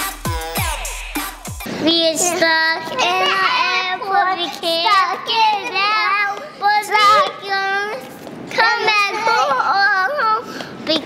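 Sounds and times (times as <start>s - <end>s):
child singing: 1.8s - 11.0s.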